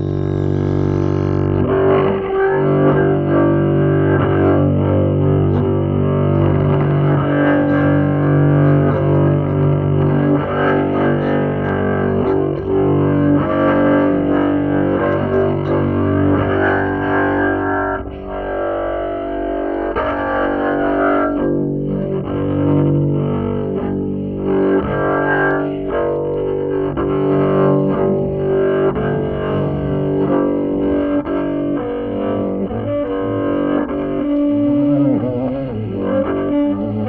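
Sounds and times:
double bass improvisation: 0.0s - 37.0s.

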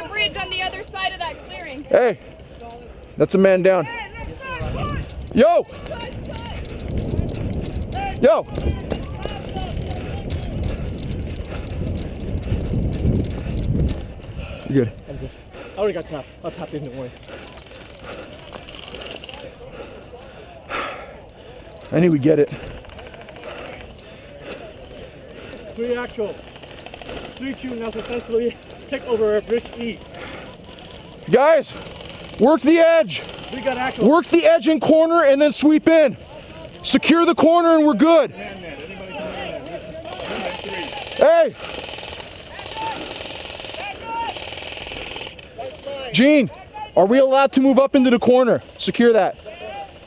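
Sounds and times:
outdoor background noise: 0.0s - 50.0s
faint distant voices: 14.5s - 34.8s
airsoft guns firing: 40.2s - 45.4s
faint distant shouts: 42.4s - 44.5s.

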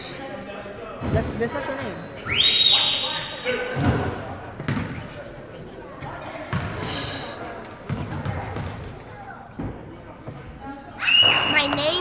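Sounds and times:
spectator chatter: 0.0s - 12.0s
basketball bouncing on hardwood: 4.6s - 5.0s, 7.9s - 8.8s.

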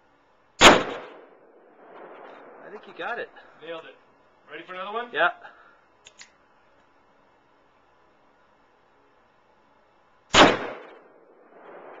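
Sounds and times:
revolver gunshot: 0.6s - 3.5s, 10.3s - 12.0s.

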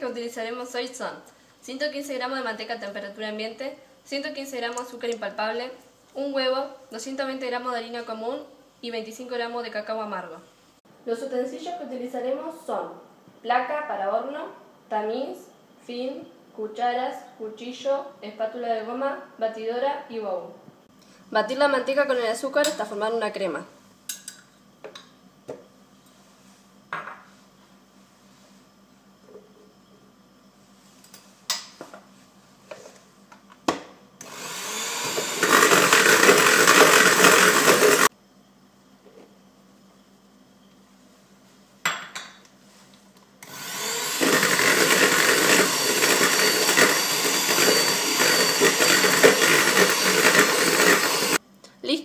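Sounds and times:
electric hand mixer running: 34.2s - 38.1s, 43.4s - 51.4s.

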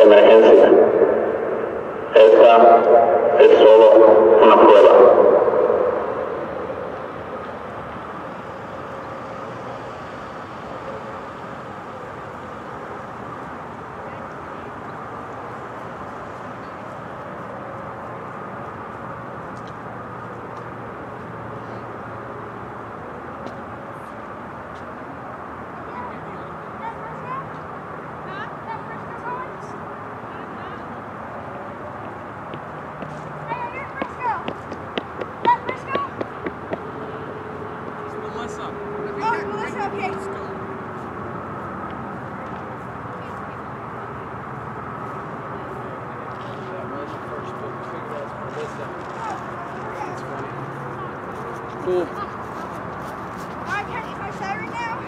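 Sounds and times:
siren voice message: 0.0s - 7.5s
distant traffic: 0.0s - 55.0s.

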